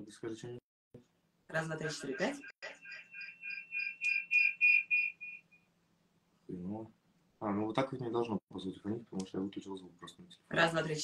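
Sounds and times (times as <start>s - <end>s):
short electronic beeps: 1.9s - 5.6s.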